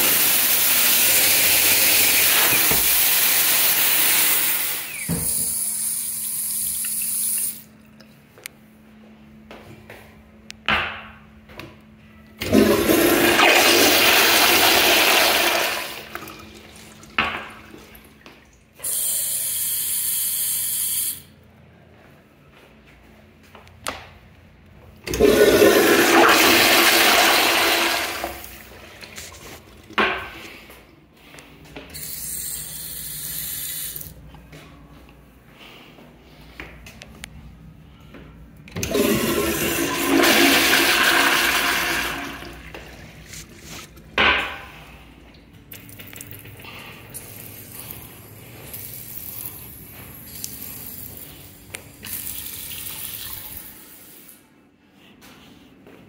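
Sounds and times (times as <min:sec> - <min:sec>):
toilet flushing rush of water: 0:00.0 - 0:05.9, 0:12.4 - 0:18.2, 0:25.1 - 0:30.0, 0:38.7 - 0:43.1
steady hiss of flush valve: 0:00.0 - 0:07.7, 0:18.8 - 0:21.3, 0:32.0 - 0:34.1.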